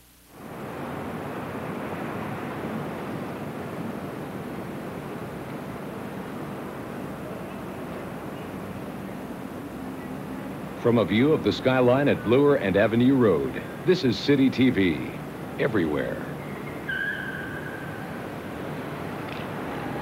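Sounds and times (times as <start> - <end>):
wind: 0.0 - 20.0
distant traffic: 0.4 - 20.0.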